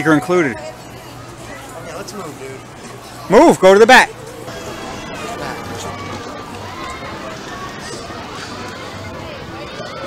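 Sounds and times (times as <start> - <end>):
many people talking: 0.0 - 10.0.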